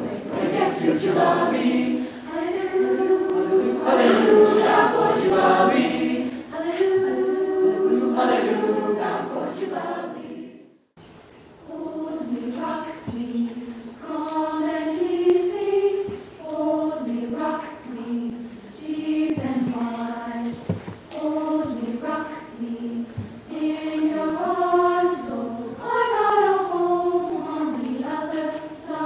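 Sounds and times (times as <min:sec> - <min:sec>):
choir singing sustained chords: 0:00.0 - 0:10.8, 0:11.7 - 0:20.5, 0:21.1 - 0:29.0.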